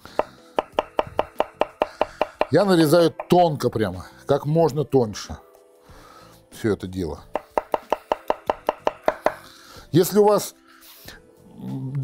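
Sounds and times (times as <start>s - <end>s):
knife chopping on wooden board: 0.1s - 3.4s, 7.4s - 9.4s.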